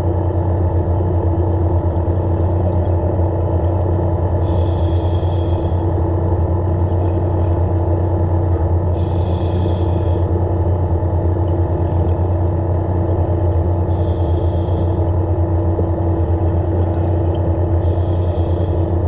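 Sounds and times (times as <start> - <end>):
regulator exhaust bubbles: 0.0 - 19.0
underwater scooter motor humming: 0.0 - 19.0.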